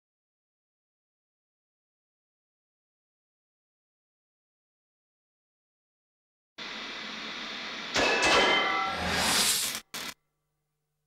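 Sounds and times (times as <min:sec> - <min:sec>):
loud interference crackle: 0:09.2 - 0:10.2.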